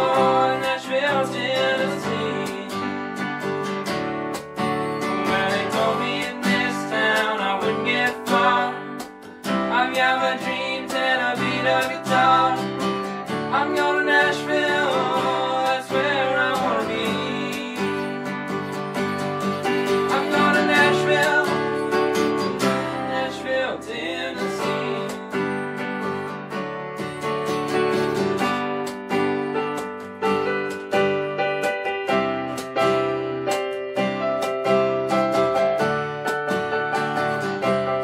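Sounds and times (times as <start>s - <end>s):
men singing together: 0.0s - 2.8s, 5.2s - 18.0s, 19.9s - 25.2s
keyboard: 0.0s - 38.0s
strummed acoustic guitar: 0.0s - 38.0s.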